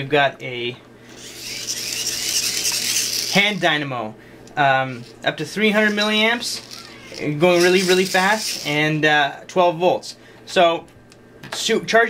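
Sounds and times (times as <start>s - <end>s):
hand-crank dynamo whirring: 1.1s - 3.6s, 5.7s - 8.9s.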